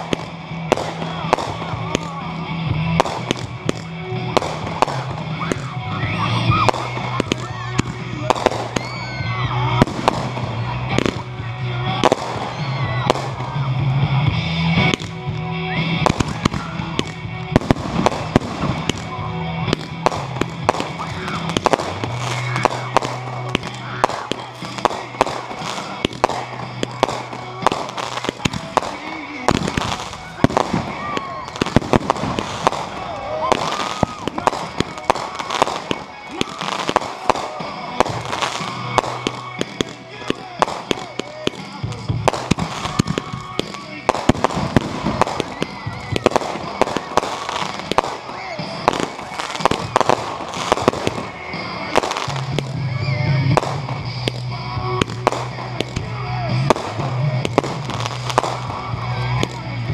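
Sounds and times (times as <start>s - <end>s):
firework shells bursting: 19.7s - 52.8s.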